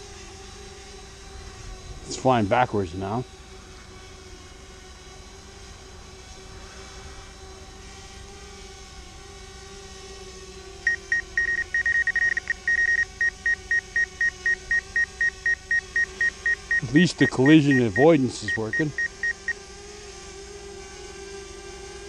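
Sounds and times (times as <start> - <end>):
steady hum: 0.0 - 22.0
high-pitched warning beeps: 10.9 - 19.6.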